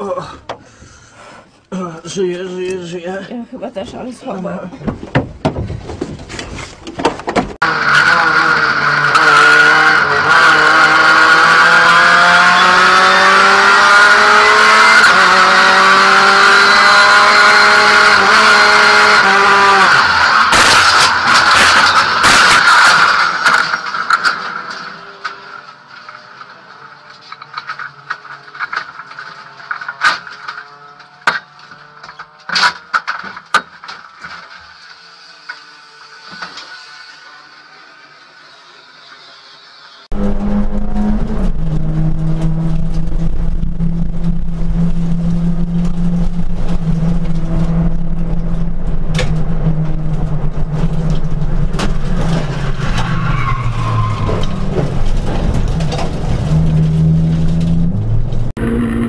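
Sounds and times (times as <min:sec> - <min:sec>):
knocks and clatters in car: 0:04.8 - 0:07.6
car crash impacts and scraping: 0:04.9 - 0:07.6, 0:20.1 - 0:31.5, 0:50.2 - 0:58.5
race car engine at high revs: 0:07.6 - 0:33.2, 0:40.0 - 0:59.0.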